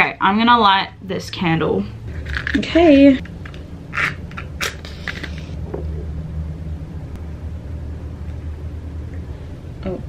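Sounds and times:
low background rumble: 0:00.0 - 0:10.0
match hissing as it catches: 0:04.6 - 0:05.5.

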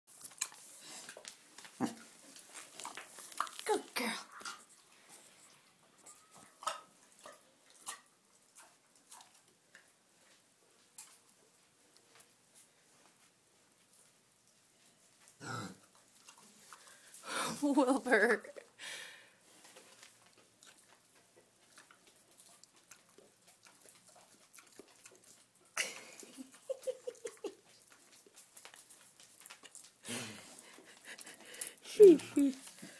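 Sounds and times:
pig grunting: 0:15.4 - 0:15.9.

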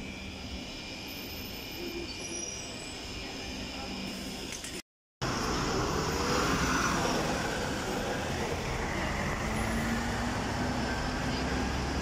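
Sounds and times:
bus engine hum: 0:05.2 - 0:12.0.

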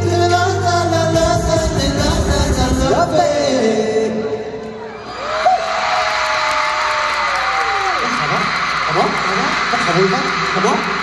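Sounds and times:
audience cheering: 0:04.6 - 0:11.0.

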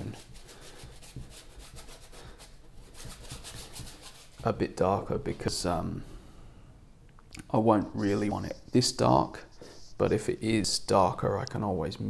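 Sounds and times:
paintbrush scrubbing on canvas: 0:00.0 - 0:04.6, 0:07.7 - 0:10.7.

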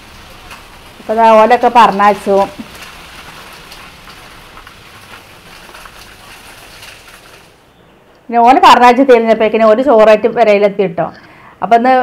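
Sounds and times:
rain falling steadily: 0:00.0 - 0:09.1.

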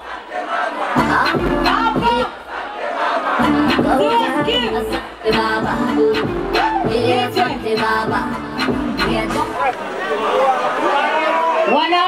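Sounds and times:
crowd shouting and singing along: 0:00.0 - 0:12.0
loud backing beat: 0:00.9 - 0:02.5, 0:03.4 - 0:09.7.

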